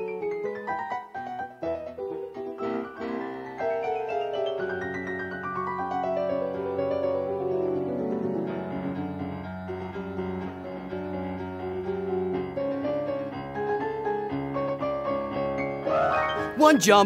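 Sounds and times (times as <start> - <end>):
piano playing: 0.0 - 17.0.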